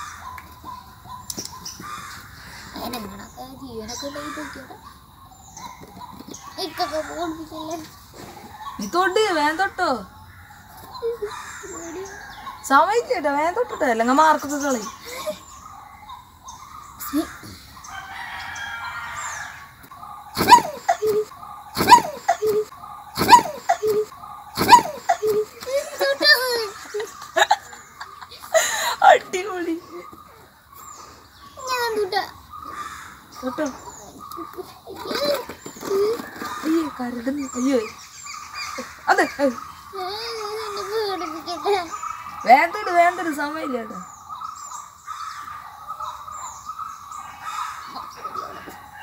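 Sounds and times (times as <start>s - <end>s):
chicken calling harshly: 20.3s - 27.4s.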